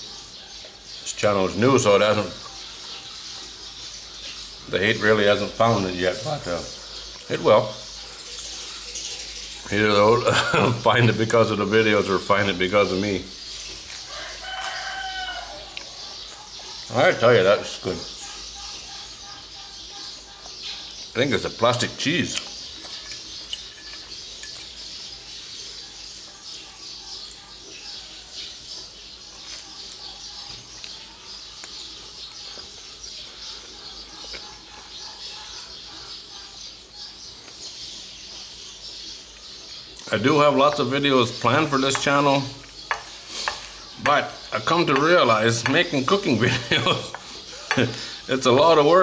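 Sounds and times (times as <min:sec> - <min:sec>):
birds chirping: 0:00.0 - 0:49.0
rooster crowing: 0:14.1 - 0:16.0.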